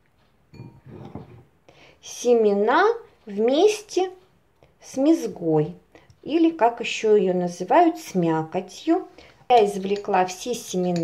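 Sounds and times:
spoon scraping tomato pulp: 9.0 - 11.0.

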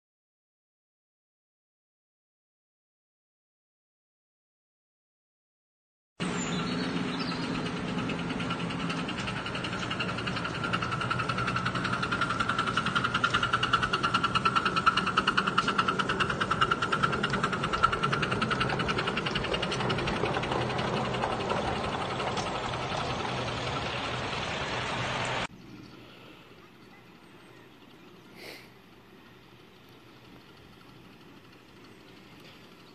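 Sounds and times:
steam locomotive running: 6.2 - 25.5, 27.8 - 32.9.

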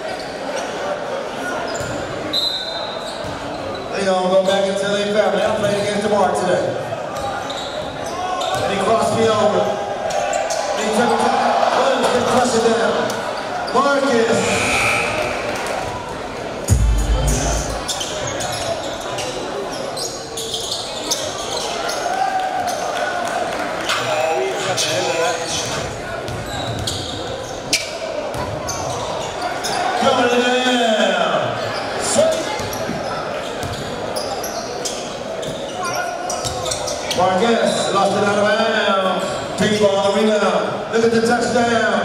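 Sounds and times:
voices of players and spectators: 0.0 - 42.0
heavy thump: 16.7 - 17.8.

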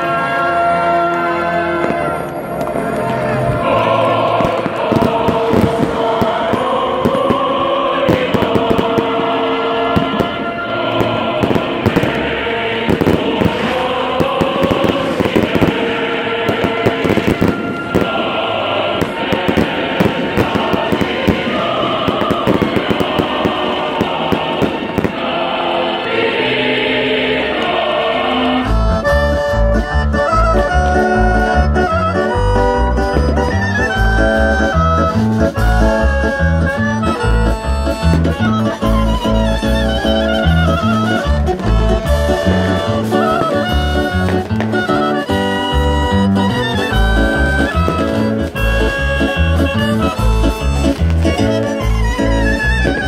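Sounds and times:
accordion tune with bass beat: 0.0 - 10.1, 10.7 - 23.1, 27.6 - 53.0
crowd singing and chanting: 0.0 - 53.0
fireworks crackling and popping: 1.8 - 25.5, 32.3 - 53.0.

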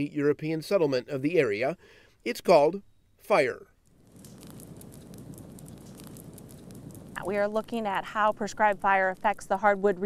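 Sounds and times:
fire crackling in leaf litter: 3.8 - 10.0.

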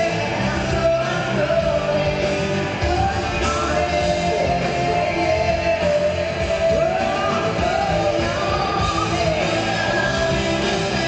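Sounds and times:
live pop-rock band: 0.0 - 11.0
woman singing lead: 0.0 - 11.0.

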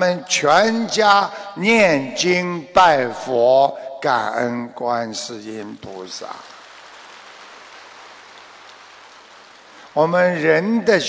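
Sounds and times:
faint audience applause: 5.6 - 10.6.

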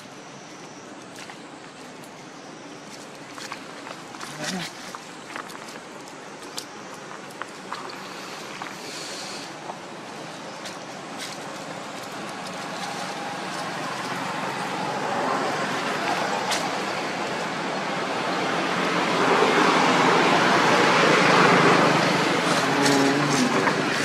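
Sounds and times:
road vehicle rushing noise: 11.4 - 24.0.

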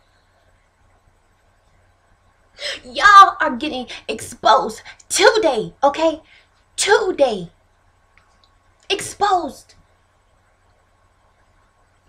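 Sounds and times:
person speaking: 2.6 - 6.2, 6.8 - 7.5, 8.9 - 9.7.

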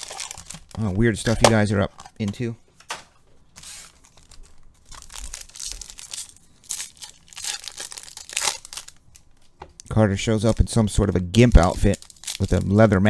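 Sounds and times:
wrappers torn and crinkled: 0.0 - 1.4, 3.6 - 9.5, 11.5 - 13.0.

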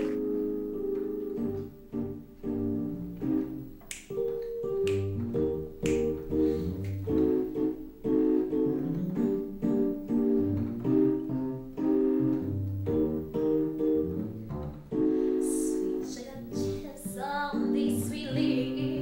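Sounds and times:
electronic keyboard piano chords: 0.0 - 19.0
person singing: 15.4 - 19.0.

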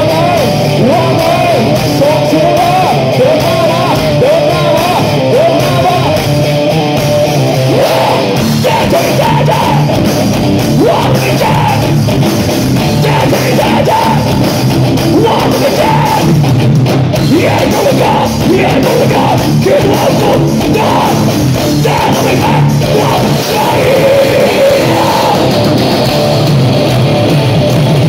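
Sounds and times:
person singing into microphone: 0.0 - 6.2, 7.6 - 10.0, 10.8 - 12.0, 12.9 - 14.4, 15.1 - 16.4, 17.2 - 25.6
bass: 0.0 - 28.0
drums: 0.0 - 28.0
electric guitars: 0.0 - 28.0.

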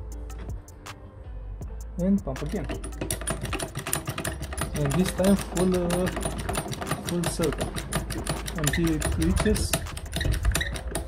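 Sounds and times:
floor jack clicking and rattling: 2.4 - 11.0.

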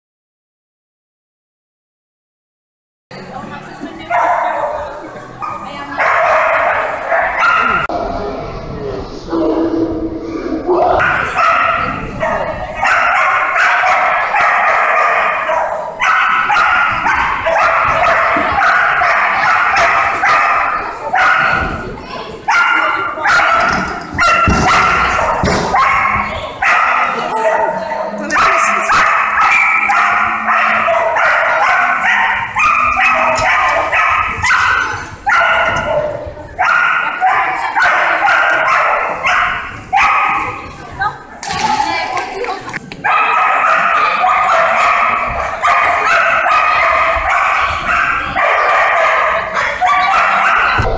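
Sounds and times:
dog barking and yipping: 5.4 - 7.9, 11.0 - 21.7, 22.5 - 40.6, 43.0 - 50.8.

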